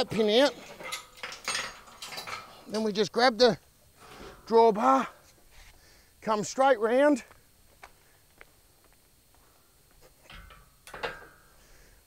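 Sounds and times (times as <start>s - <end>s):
metal knocks of trailer drawbar: 0.0s - 2.7s, 10.3s - 11.4s.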